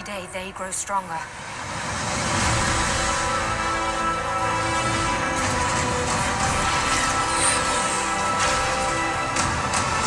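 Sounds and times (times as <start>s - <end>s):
sustained trailer music chords: 0.0s - 10.0s.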